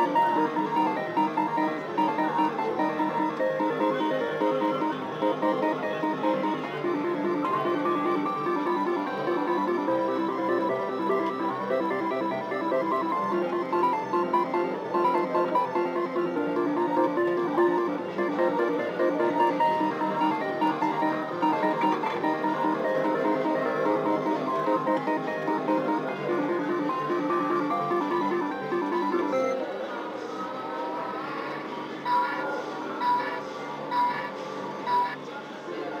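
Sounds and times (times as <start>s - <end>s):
slot machine bonus music: 0.0s - 29.6s.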